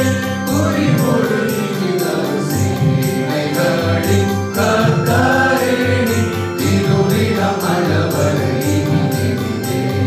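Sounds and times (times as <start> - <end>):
men singing a hymn: 0.0 - 10.0.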